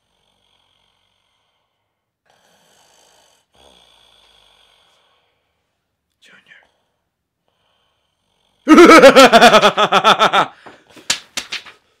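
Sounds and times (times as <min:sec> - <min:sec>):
slow breathing: 0:06.6 - 0:08.5.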